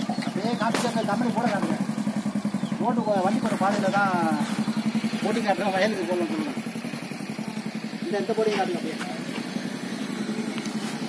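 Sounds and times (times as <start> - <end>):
small engine throbbing hum: 0.0 - 11.0.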